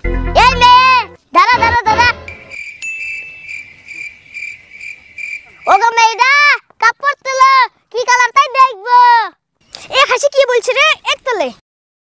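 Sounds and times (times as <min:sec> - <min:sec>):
high voice crying out: 0:00.4 - 0:02.3
cricket chirping: 0:02.1 - 0:06.0.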